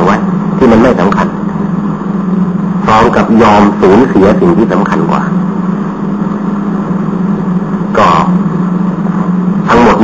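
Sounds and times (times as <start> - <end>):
background hiss: 0.0 - 10.0
steady low hum: 0.0 - 10.0.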